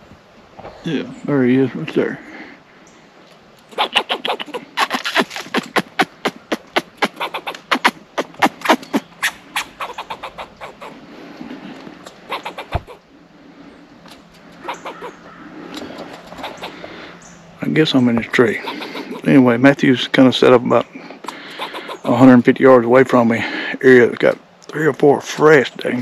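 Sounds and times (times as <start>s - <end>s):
squirrel barking: 3.7s - 11.0s, 12.0s - 13.0s, 14.1s - 19.7s, 21.2s - 22.4s.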